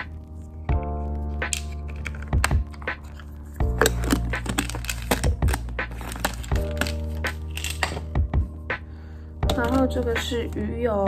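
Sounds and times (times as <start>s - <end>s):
background music: 0.0s - 11.0s
plastic case lid clicking: 1.4s - 8.1s
case set on table: 1.4s - 8.2s.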